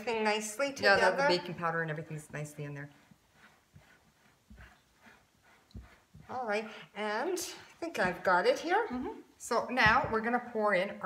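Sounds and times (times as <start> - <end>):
spatula scraping glass bowl: 0.0 - 9.0
soft low thumps: 7.8 - 10.7.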